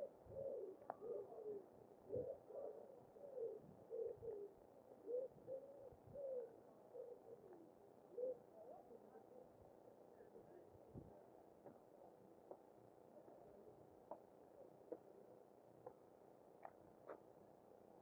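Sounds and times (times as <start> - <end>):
pigeon cooing: 0.0 - 8.5.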